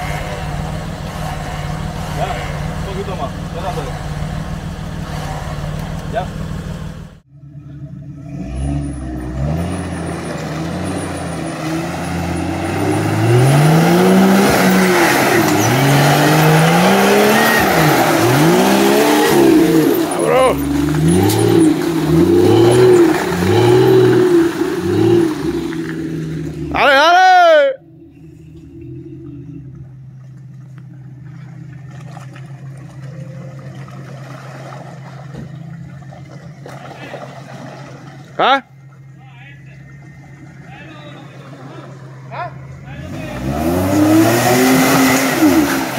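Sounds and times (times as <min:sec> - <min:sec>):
off-road engine revving: 0:00.0 - 0:45.9.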